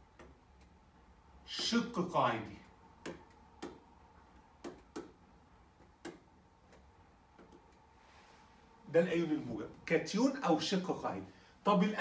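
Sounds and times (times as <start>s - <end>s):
stylus tapping on touchscreen: 3.0s - 3.9s, 4.6s - 5.2s, 5.8s - 7.8s.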